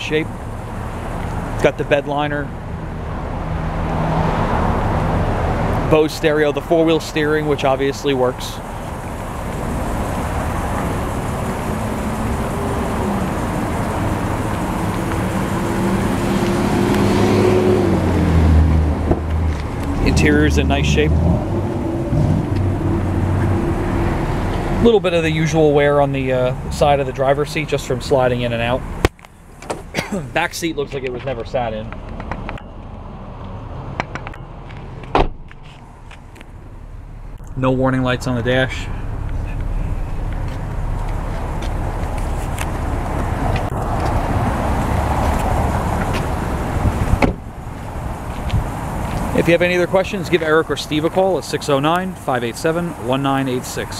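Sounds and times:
truck engine idling: 0.0 - 3.5, 4.8 - 16.3, 35.5 - 53.9
steady low rumble: 18.1 - 53.4
loud thump: 35.1 - 35.6, 47.1 - 47.5.

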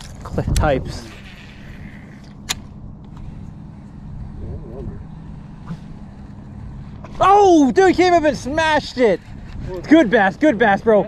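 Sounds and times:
electric trolling motor humming: 0.0 - 11.0.

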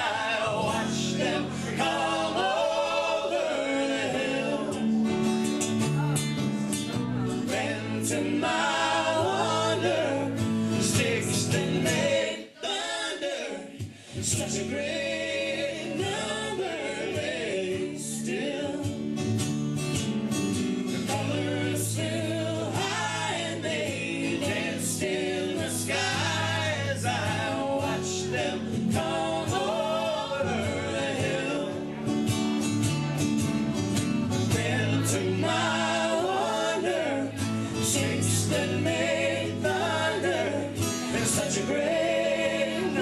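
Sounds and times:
voices singing in harmony: 0.0 - 5.4, 6.8 - 19.1, 20.9 - 32.2, 34.4 - 43.0
electric bass: 0.0 - 12.3, 14.2 - 43.0
strummed acoustic guitars: 0.0 - 43.0.

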